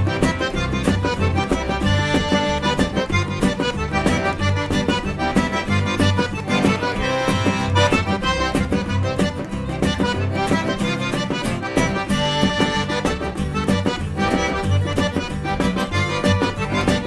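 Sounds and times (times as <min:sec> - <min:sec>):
acoustic guitar: 0:00.0 - 0:17.0
button accordion melody: 0:00.0 - 0:17.0
fiddle: 0:00.0 - 0:17.0
upright bass: 0:00.0 - 0:17.0.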